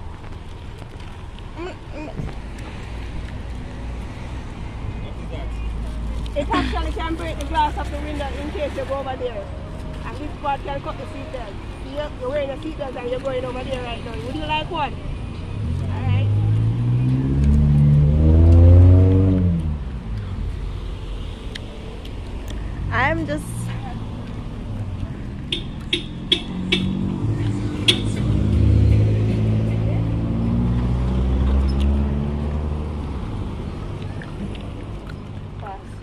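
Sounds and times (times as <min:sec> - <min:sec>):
car going by: 0:02.0 - 0:36.0
car engine pulling away: 0:15.6 - 0:20.6, 0:23.7 - 0:35.5.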